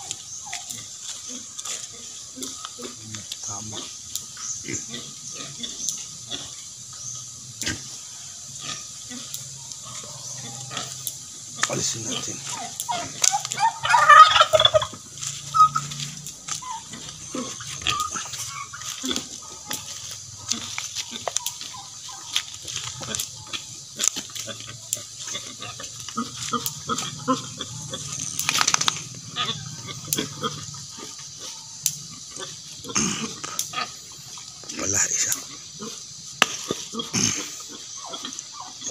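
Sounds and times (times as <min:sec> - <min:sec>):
pigs grunting: 0:00.0 - 0:38.9.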